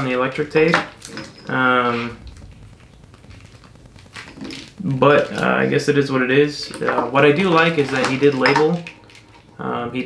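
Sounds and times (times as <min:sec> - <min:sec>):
plastic wiring loom rustling: 0:06.7 - 0:09.5.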